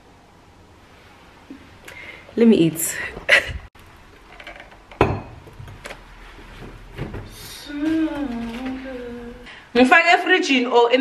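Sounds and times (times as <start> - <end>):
glass bottles knocking on counter: 4.4 - 5.5.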